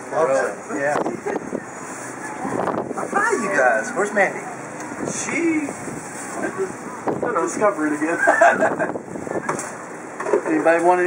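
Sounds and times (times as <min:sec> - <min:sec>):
people laughing: 0:08.0 - 0:09.5.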